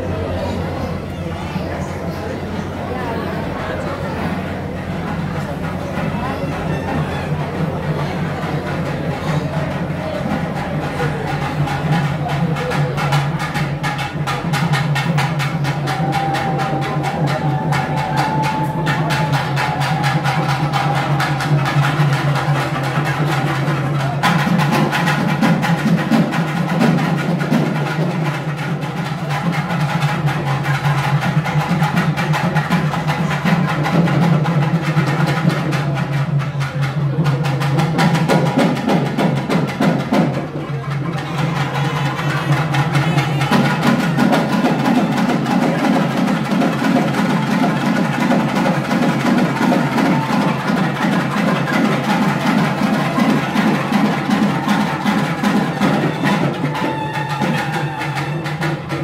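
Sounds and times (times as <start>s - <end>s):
crowd noise: 0.0s - 59.0s
drums beaten in fast rhythm: 0.0s - 59.0s.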